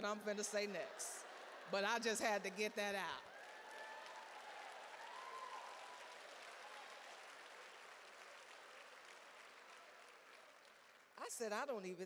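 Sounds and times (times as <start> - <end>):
audience applauding: 0.0 - 11.2.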